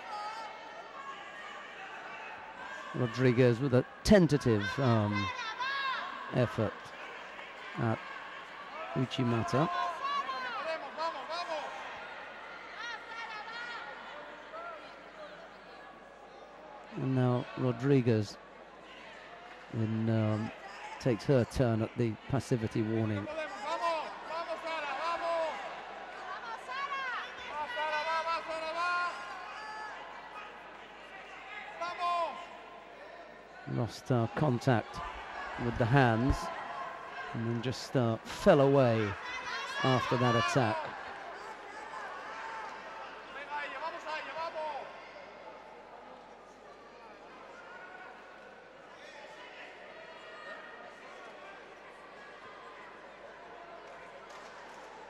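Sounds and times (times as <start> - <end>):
hall background noise: 0.0 - 49.6
people calling out in a hall: 0.0 - 55.0
people shouting encouragement: 4.4 - 14.8, 38.7 - 45.0.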